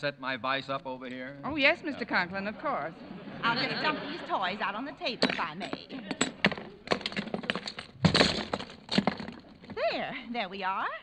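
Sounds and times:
crash: 5.2 - 9.8
toys clattering onto a table: 5.2 - 9.8.

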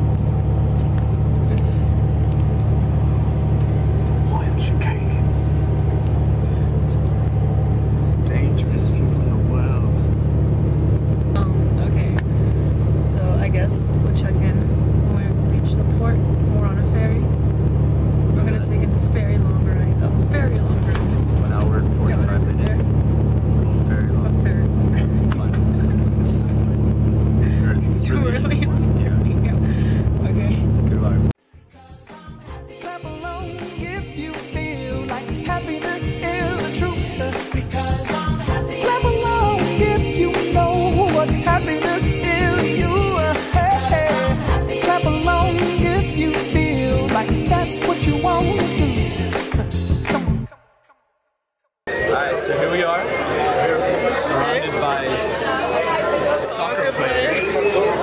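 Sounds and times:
bus engine and road noise: 0.0 - 31.4, 33.2 - 50.4.

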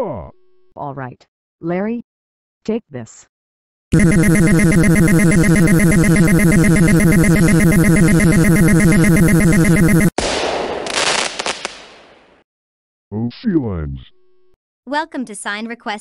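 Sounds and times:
harsh electric buzz: 4.0 - 10.1
explosion with crackles: 10.2 - 12.4.

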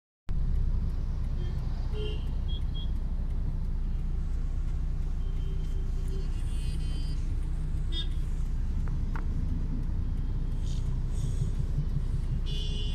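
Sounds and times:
car engine and road noise: 0.3 - 12.9
car horn toots: 1.4 - 2.9, 7.9 - 8.2, 12.3 - 12.9.

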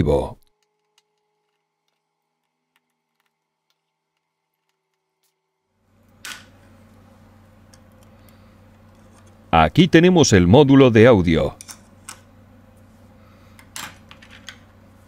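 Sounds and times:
faint room hum: 0.0 - 15.0.

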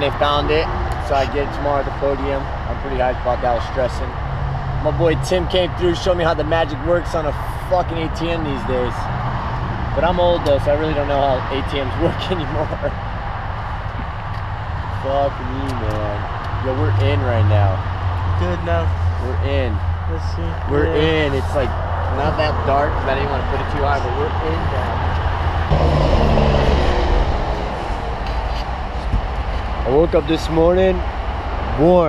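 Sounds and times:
motor vehicle engine rumble: 0.0 - 32.0
low rumbling noise: 16.6 - 31.8.

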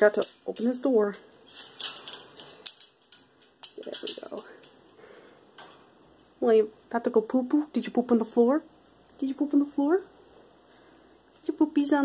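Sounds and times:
bird cage door clicks and rattles: 0.0 - 4.8.

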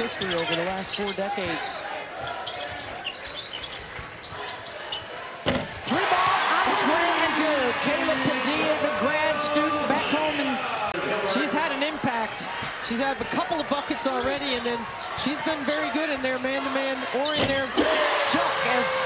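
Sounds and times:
crowd shouting: 5.8 - 14.2, 14.8 - 19.0.

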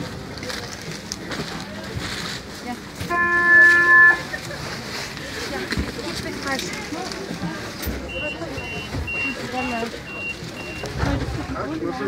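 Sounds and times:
low rumble of tram: 0.0 - 12.0
passengers chatting: 0.0 - 12.0
tram door warning beeps: 7.8 - 11.3.

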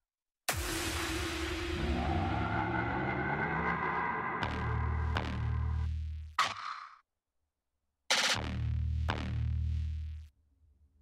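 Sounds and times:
low bass drone: 0.6 - 6.3.

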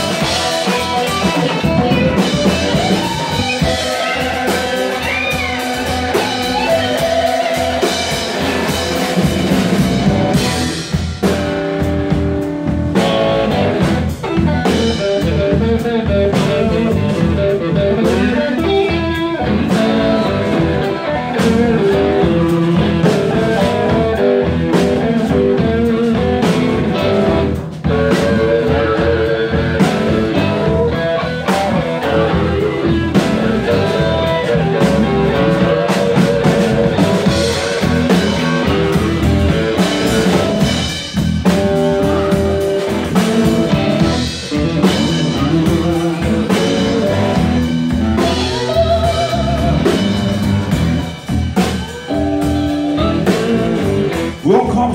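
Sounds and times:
bass guitar: 0.0 - 54.9
drum kit: 0.0 - 54.9
electric guitars: 0.0 - 54.9.

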